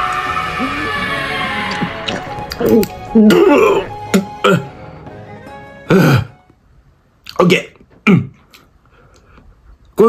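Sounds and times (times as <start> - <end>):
background music: 0.0 - 6.7.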